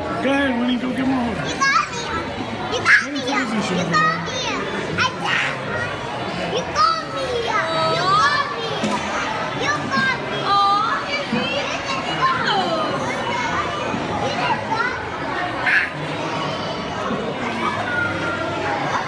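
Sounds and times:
crowd chatter: 0.0s - 19.0s
small children squealing and babbling: 1.4s - 19.0s.

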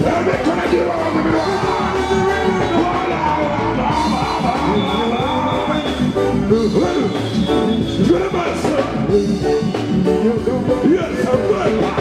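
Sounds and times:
man singing into microphone: 0.0s - 7.4s, 8.0s - 12.0s
live band music: 0.0s - 12.0s.

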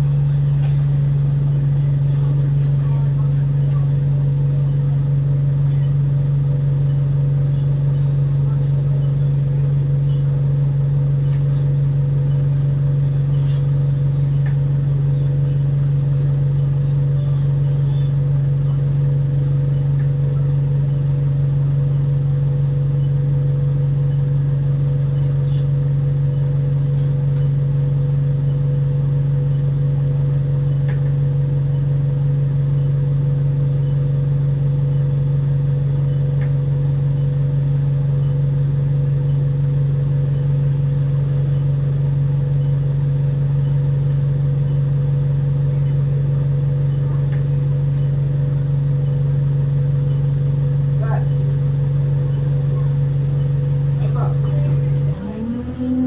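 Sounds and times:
bus diesel engine idling: 0.0s - 56.0s
faint high chirps: 31.8s - 32.4s, 37.3s - 38.3s, 42.6s - 43.8s, 48.0s - 49.1s, 52.0s - 54.2s.

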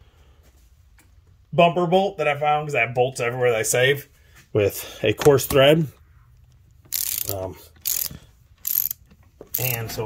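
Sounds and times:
socket ratchet clicking: 6.9s - 9.9s.

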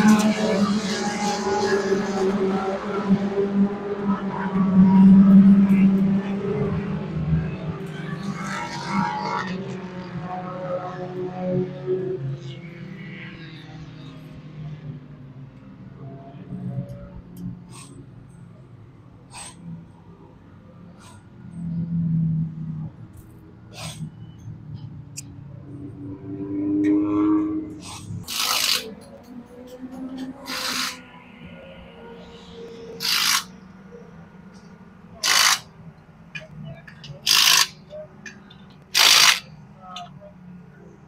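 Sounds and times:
impact wrench spinning lug nuts: 27.9s - 29.0s, 33.0s - 33.5s, 35.2s - 35.7s, 37.2s - 37.8s, 38.9s - 39.5s.

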